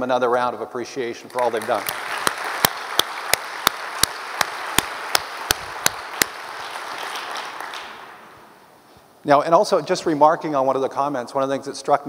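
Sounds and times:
close hand claps: 0:01.3 - 0:08.4
audience applauding: 0:01.3 - 0:08.5.

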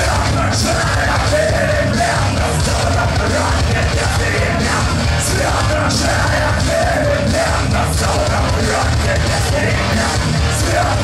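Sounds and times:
bass guitar: 0:00.0 - 0:11.0
punk rock band playing: 0:00.0 - 0:11.0.

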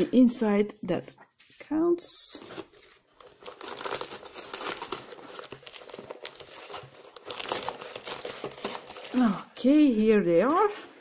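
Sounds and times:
packaging crinkling and rustling: 0:02.3 - 0:09.6.

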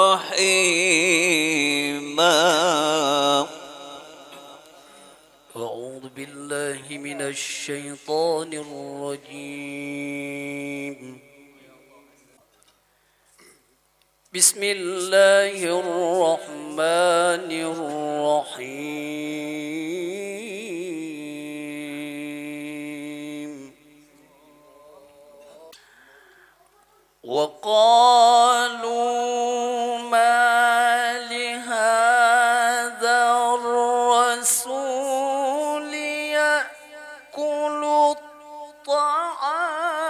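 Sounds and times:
man chanting recitation: 0:00.0 - 0:04.7, 0:05.5 - 0:12.4, 0:14.3 - 0:25.8, 0:27.2 - 0:40.0.

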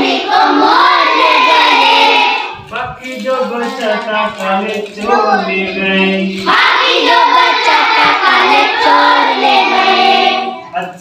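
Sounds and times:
children singing in chorus: 0:00.0 - 0:02.6, 0:05.0 - 0:10.8.

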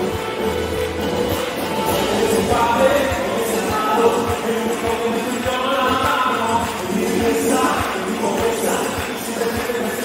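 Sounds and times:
acoustic guitar: 0:00.0 - 0:10.0
sung vocals: 0:01.8 - 0:10.0.

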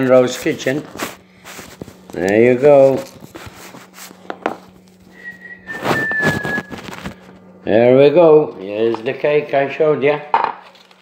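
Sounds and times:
foil rustle: 0:00.0 - 0:04.2, 0:04.8 - 0:07.5
aluminium foil handling: 0:00.2 - 0:04.2, 0:04.8 - 0:07.4, 0:10.6 - 0:11.0
thin high whistle-like tone: 0:05.1 - 0:06.8.

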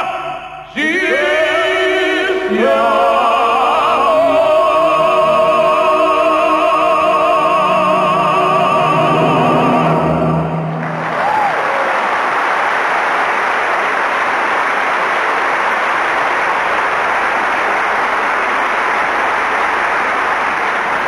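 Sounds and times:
large audience applauding: 0:10.7 - 0:21.0
call from crowd: 0:10.8 - 0:21.0.

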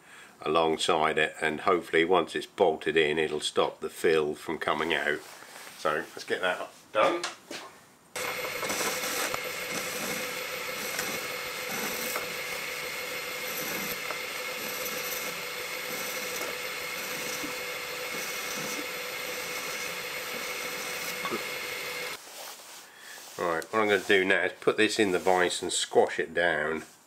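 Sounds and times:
lathe cutting metal: 0:08.2 - 0:22.2.

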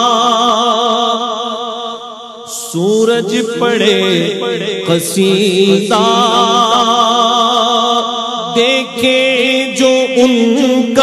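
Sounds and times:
man singing with vibrato: 0:00.0 - 0:11.0.

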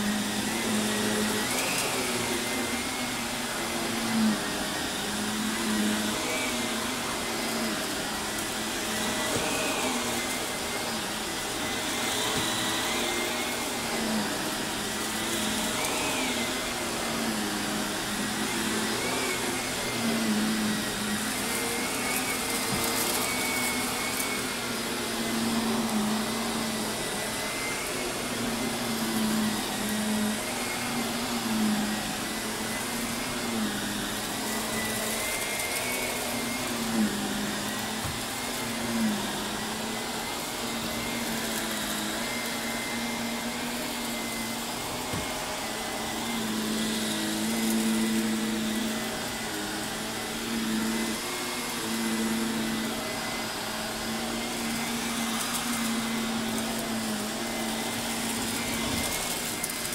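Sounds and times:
vacuum cleaner on carpet: 0:00.0 - 0:59.9.

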